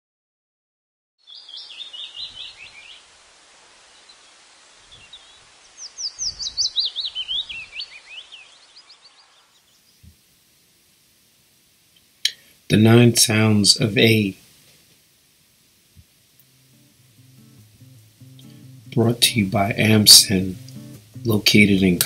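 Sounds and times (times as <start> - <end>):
songbird chirping: 1.2 - 11.2, 16.0 - 22.0
outdoor hiss: 1.2 - 22.0.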